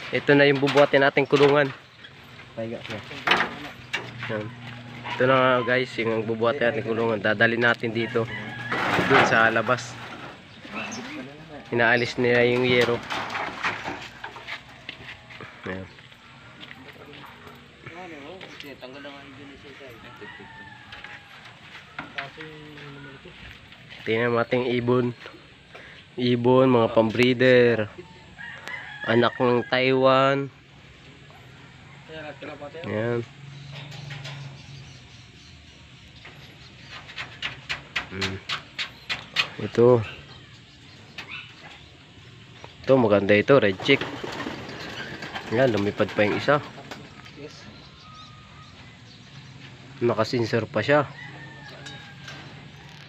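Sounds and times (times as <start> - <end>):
clicks and knocks of wire cage: 0.0 - 4.4, 12.0 - 14.6, 33.7 - 34.7, 43.6 - 47.5.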